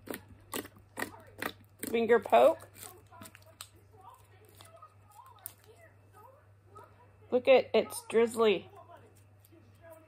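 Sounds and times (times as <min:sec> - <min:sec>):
slime popping: 0:00.0 - 0:05.8.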